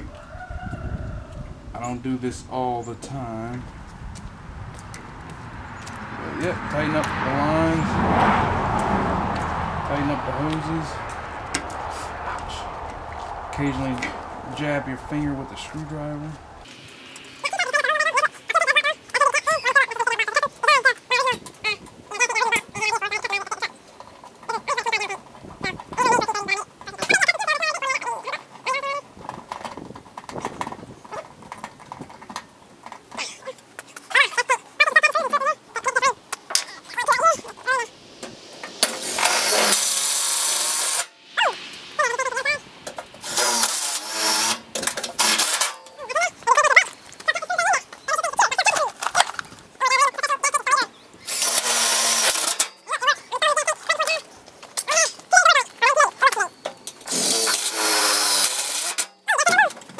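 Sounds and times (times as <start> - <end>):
steady hissing noise: 9.3 - 19.2, 35.6 - 47.3
high-pitched animal cries: 41.4 - 42.6.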